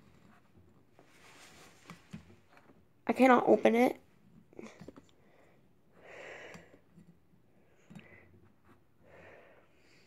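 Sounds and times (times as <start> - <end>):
soft breath: 4.5 - 10.0.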